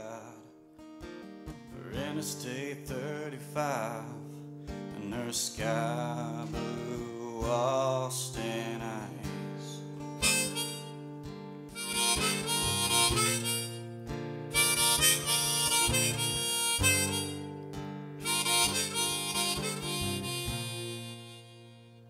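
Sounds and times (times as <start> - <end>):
acoustic guitar strumming: 0.0 - 22.0
harmonica solo: 10.2 - 22.0.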